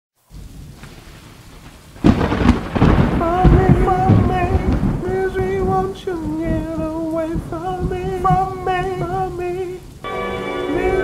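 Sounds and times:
steady rain: 0.2 - 11.0
thunderclap rumbling: 0.3 - 11.0.

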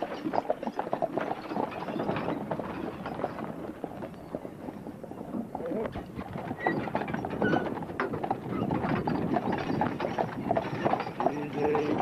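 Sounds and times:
horse hooves on dirt road: 0.0 - 12.0.

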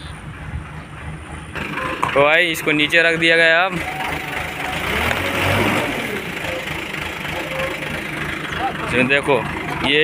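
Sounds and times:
heavy machinery engine idling: 0.0 - 10.0.

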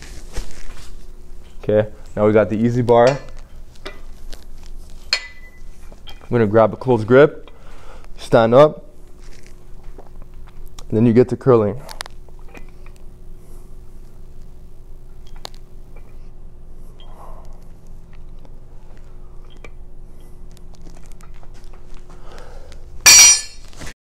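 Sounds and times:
low hum: 0.0 - 23.8
metallic clatter: 23.1 - 23.8.

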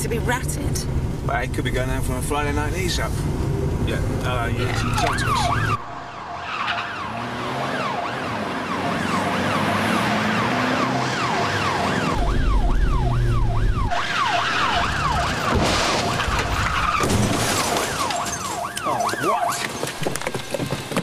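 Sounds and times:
car engine rumble: 0.0 - 18.9
police siren wailing: 4.6 - 19.9.

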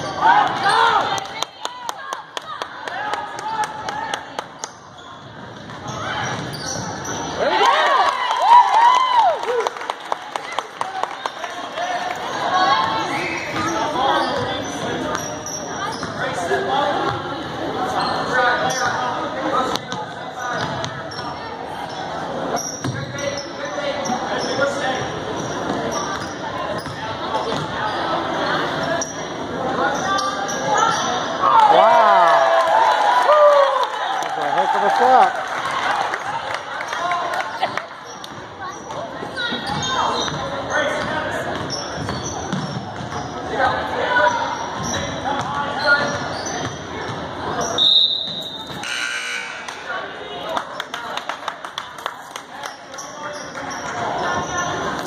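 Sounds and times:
spectator chatter: 0.0 - 55.0
sneaker squeaks: 4.4 - 7.4, 12.2 - 16.5, 17.8 - 31.4, 37.6 - 50.0, 52.6 - 55.0
basketball bouncing: 41.5 - 43.3
referee's whistle: 47.6 - 49.7.

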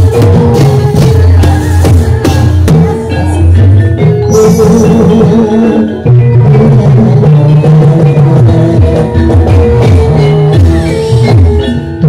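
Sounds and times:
drums: 0.0 - 12.0
tuned mallet percussion: 0.0 - 12.0.

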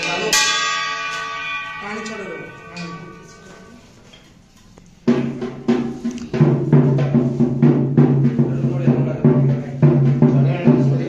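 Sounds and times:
metal bell ringing: 0.0 - 4.5.

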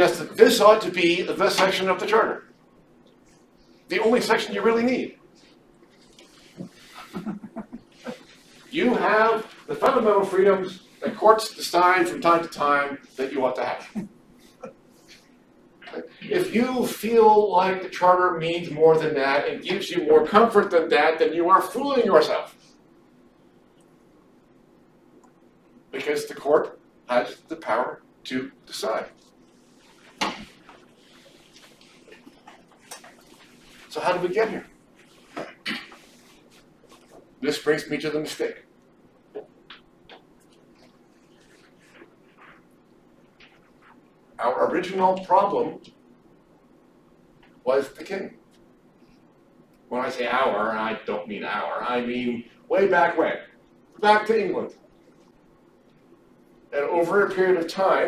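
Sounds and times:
man speaking: 0.0 - 2.5, 3.9 - 5.2, 8.7 - 14.0, 26.0 - 29.2, 33.9 - 34.7, 37.4 - 38.7, 44.4 - 45.8
people chuckling: 6.8 - 8.4.

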